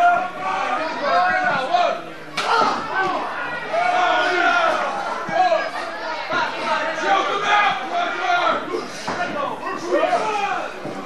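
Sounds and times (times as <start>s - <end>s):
crowd shouting: 0.0s - 10.8s.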